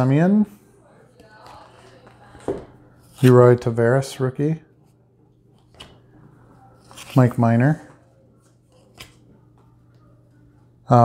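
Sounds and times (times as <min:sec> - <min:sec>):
trading cards rustling: 0:06.8 - 0:07.8.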